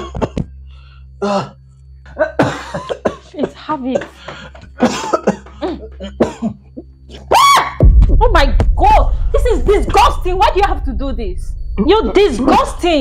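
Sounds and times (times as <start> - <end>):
man coughing hard: 0.0 - 0.6, 1.2 - 6.9.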